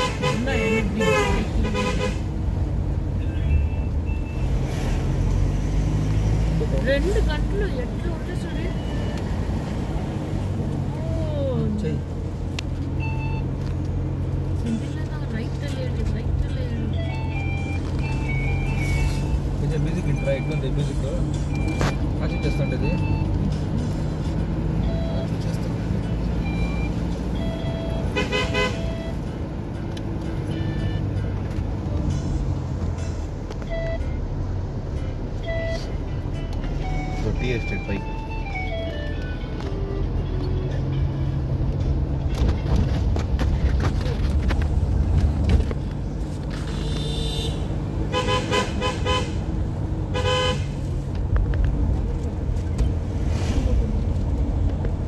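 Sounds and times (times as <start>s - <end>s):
car driving low rumble: 0.0s - 55.0s
music playing: 16.4s - 43.4s.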